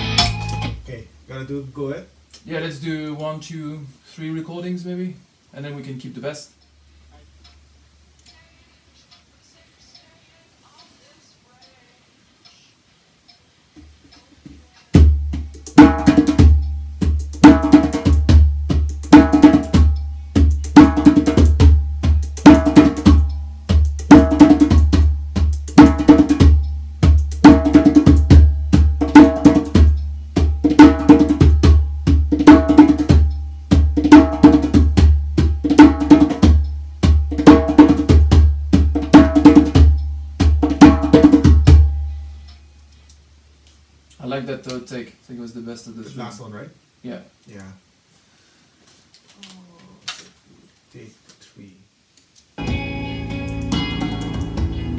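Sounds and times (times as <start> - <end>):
djembe played by hand: 14.9 - 42.0
deep bass: 52.6 - 54.9.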